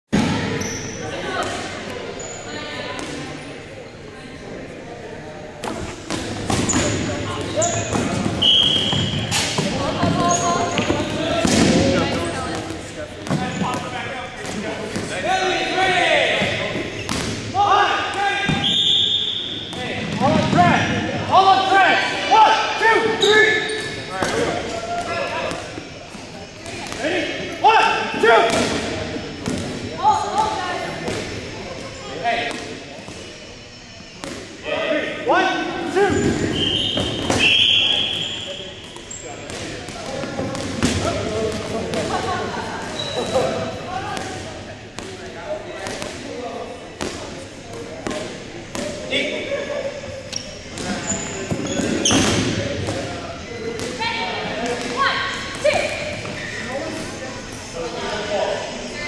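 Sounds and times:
dodgeballs bouncing on gym floor: 0.1s - 0.6s, 5.6s - 15.4s, 16.3s - 19.0s, 28.4s - 31.4s, 36.0s - 37.9s, 38.8s - 42.6s, 43.2s - 46.4s, 47.0s - 49.1s, 50.7s - 56.4s
players' voices: 0.1s - 59.0s
sneaker squeaks: 0.2s - 3.5s, 5.6s - 15.1s, 16.3s - 17.3s, 18.2s - 21.1s, 22.9s - 27.4s, 35.8s - 41.2s, 42.0s - 44.4s, 50.0s - 54.3s, 55.0s - 57.7s.

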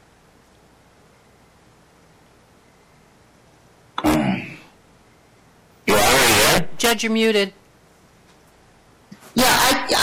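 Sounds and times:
person clearing throat: 4.0s - 4.7s.

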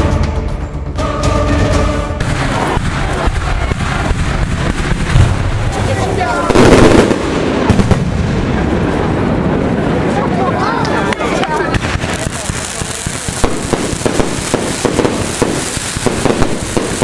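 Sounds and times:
crowd voices: 1.1s - 17.0s
fireworks bangs and crackles: 2.2s - 17.0s.

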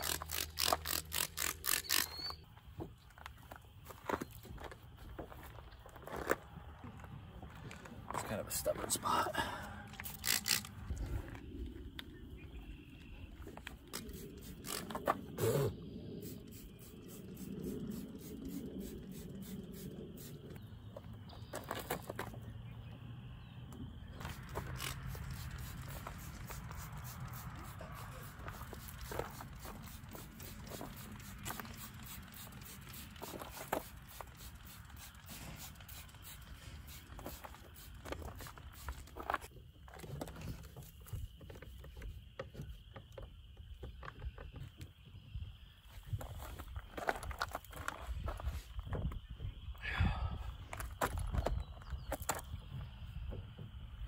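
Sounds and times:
towel scrubbing car paint: 24.3s - 37.7s.

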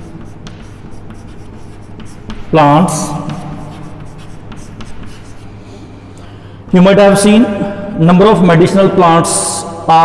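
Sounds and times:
chalk scratching on blackboard: 0.0s - 5.6s.

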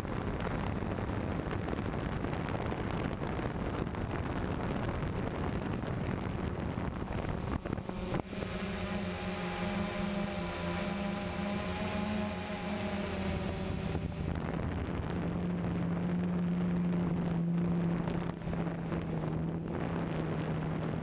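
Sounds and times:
wind rushing on microphone: 0.0s - 21.0s
drone propellers buzzing: 4.3s - 21.0s.

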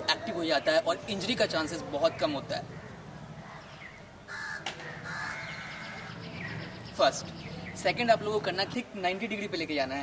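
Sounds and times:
crow cawing: 4.3s - 6.2s.

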